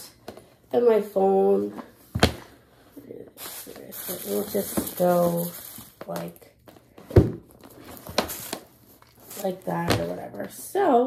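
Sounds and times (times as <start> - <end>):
bag rustling: 2.2 - 10.5.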